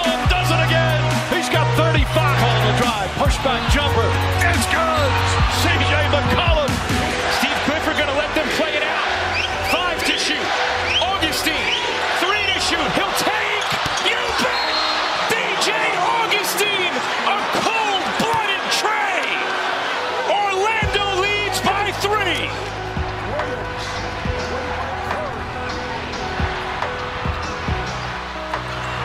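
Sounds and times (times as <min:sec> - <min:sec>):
arena crowd noise: 0:00.0 - 0:29.0
basketball bouncing: 0:13.6 - 0:14.0.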